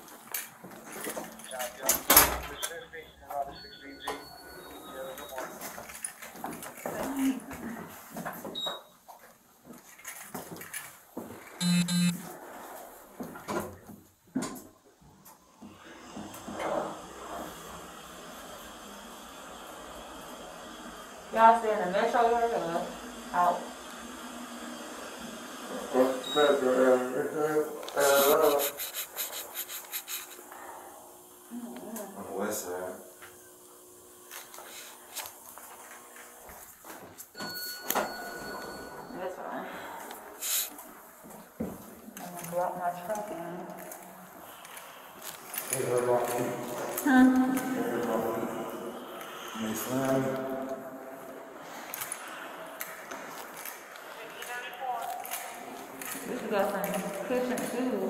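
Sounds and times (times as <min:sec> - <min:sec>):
short beeps: 0:03.0 - 0:05.4, 0:11.6 - 0:12.2.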